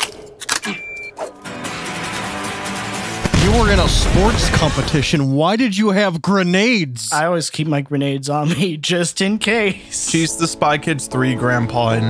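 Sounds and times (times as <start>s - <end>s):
high beep: 0.7s - 1.2s.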